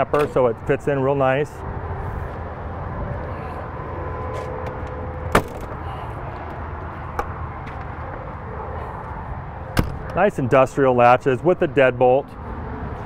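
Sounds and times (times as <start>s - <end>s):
steady background hum: 0.0s - 13.0s.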